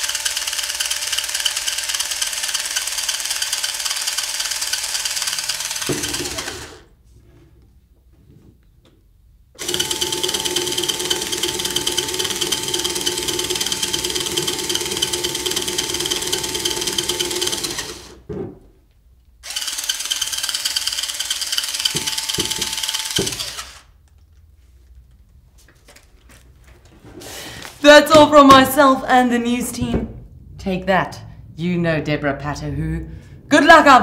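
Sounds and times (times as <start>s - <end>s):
cordless drill running: 0.0s - 6.9s, 9.6s - 18.3s, 19.4s - 24.0s.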